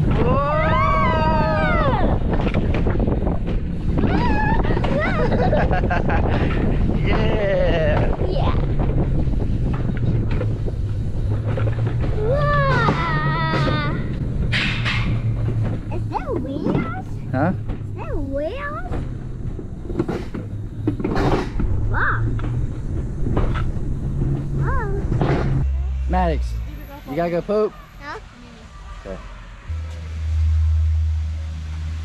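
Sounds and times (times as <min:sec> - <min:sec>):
steady low rumble: 0:00.0 - 0:32.0
voice exclamations and laughter: 0:12.3 - 0:14.1.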